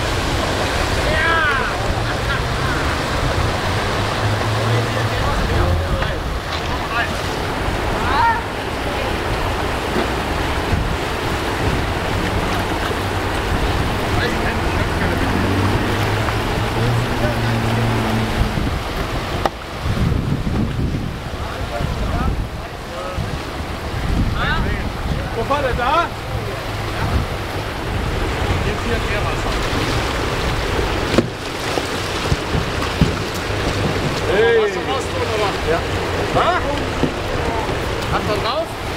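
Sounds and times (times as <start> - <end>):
whitewater rushing: 0.0 - 38.9
wind buffeting microphone: 0.0 - 38.9.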